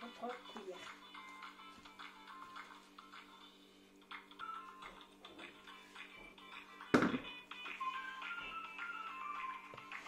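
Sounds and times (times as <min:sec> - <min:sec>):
light melodic background music: 0:00.0 - 0:10.0.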